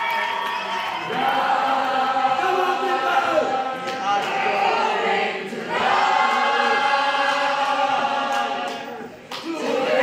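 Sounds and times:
choir singing unaccompanied: 1.0 - 10.0.

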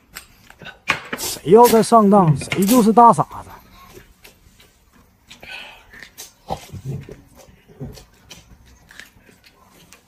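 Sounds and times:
chewing: 5.2 - 10.0.

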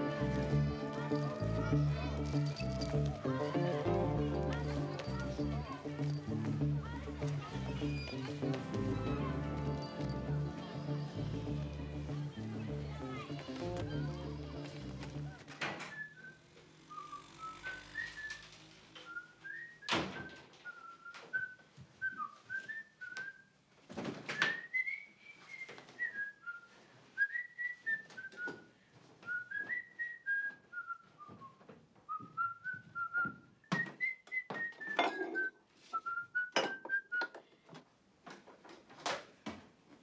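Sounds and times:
low music: 0.0 - 15.4
person whistling a slow tune: 24.4 - 37.4.

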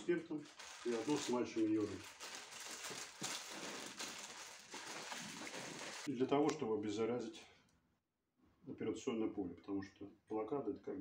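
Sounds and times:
soft rustling of cotton wool: 0.0 - 6.1.

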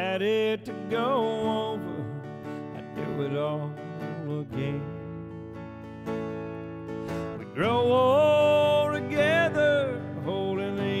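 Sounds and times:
man singing country vocal: 0.0 - 6.3, 7.1 - 11.0
strummed electric guitar: 0.0 - 11.0.

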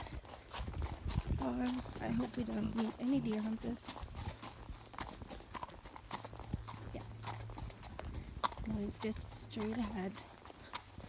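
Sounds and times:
horse hooves on gravel: 0.0 - 11.0.

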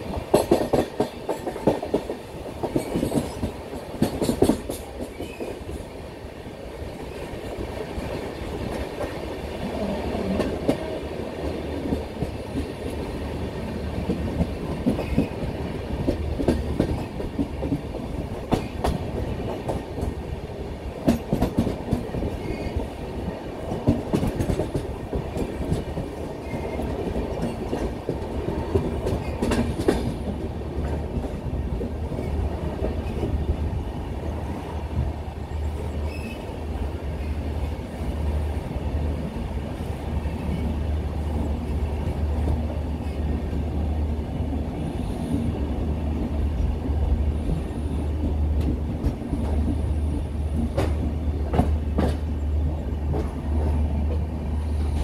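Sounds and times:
rail joint clacks: 0.0 - 6.0, 6.9 - 38.2, 39.2 - 55.0
train wheels rolling on rails: 0.0 - 55.0.

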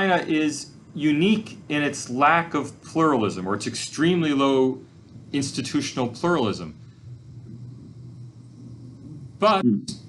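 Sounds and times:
faint background hiss: 0.0 - 10.0
low steady hum: 0.0 - 10.0.

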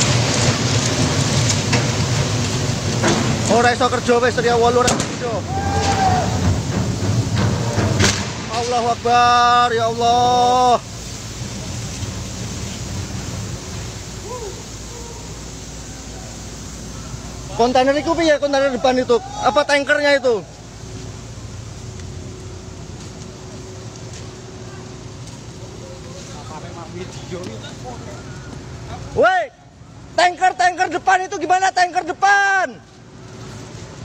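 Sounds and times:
wind rumbling: 0.0 - 27.2
harbour background: 0.0 - 31.2.

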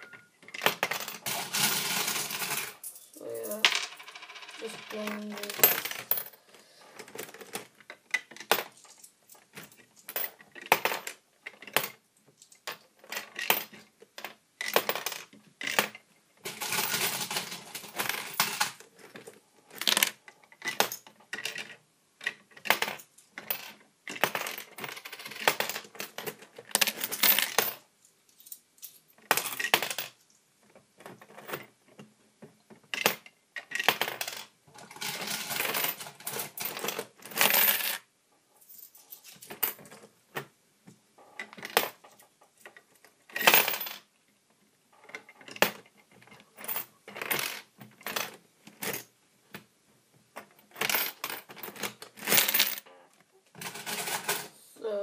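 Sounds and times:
coins clinking: 0.0 - 7.6, 8.4 - 18.8, 33.0 - 38.0, 38.6 - 39.8, 43.3 - 44.0, 50.7 - 52.9, 53.6 - 54.6
coins jingling together: 1.0 - 6.4.

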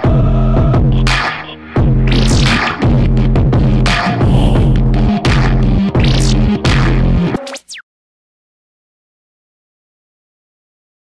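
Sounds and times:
electronic music with throbbing bass: 0.0 - 7.8.

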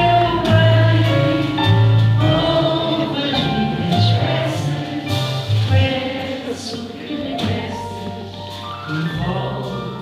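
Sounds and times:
drums: 0.0 - 10.0
grand piano: 0.0 - 10.0
upright double bass: 0.0 - 10.0.

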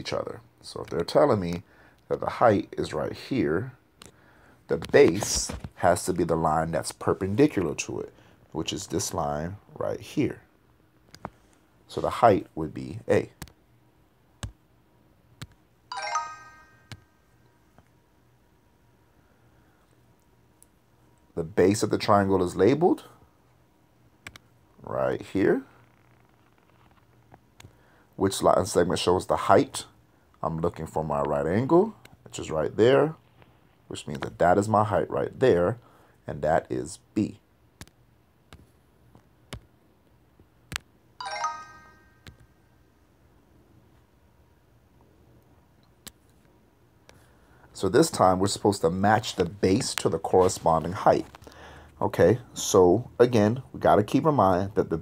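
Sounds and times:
bell-like chime: 15.9 - 17.2, 41.2 - 42.3.

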